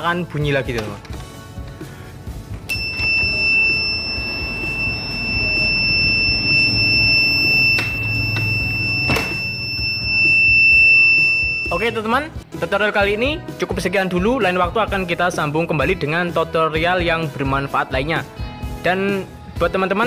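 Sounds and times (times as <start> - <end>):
background music: 0.0 - 20.0
high-pitched buzzer beep: 2.7 - 12.0.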